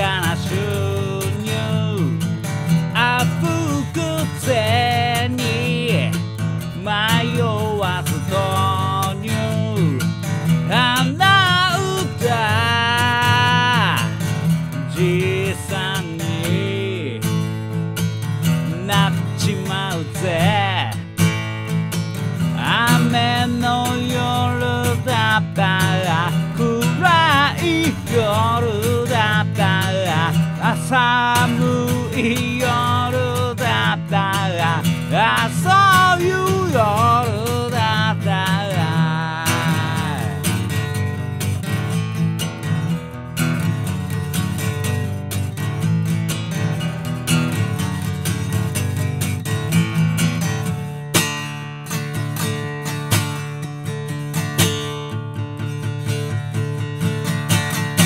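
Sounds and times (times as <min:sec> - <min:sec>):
man singing: 0:00.0 - 0:17.5, 0:18.6 - 0:21.3, 0:22.4 - 0:41.0
acoustic guitar strumming: 0:00.0 - 0:58.0.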